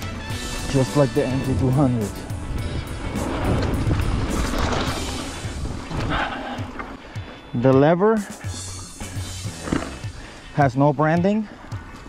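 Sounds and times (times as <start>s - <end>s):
background music: 0.0s - 12.0s
mountain bike rolling on dirt: 0.4s - 10.6s.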